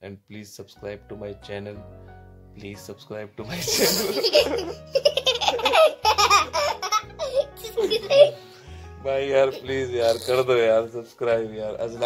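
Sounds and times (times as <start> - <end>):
young boy laughing: 3.5 - 8.4.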